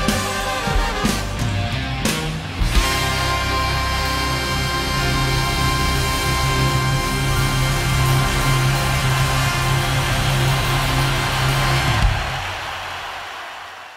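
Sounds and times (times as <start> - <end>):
rock band holding final chord: 0.0 - 12.4.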